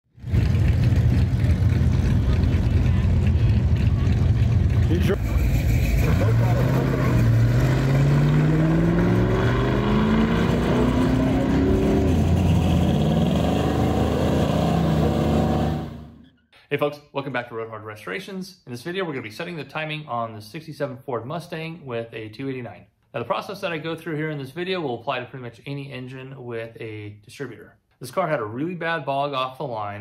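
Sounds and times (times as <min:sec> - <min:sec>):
car engine revving: 0:00.2 - 0:16.3.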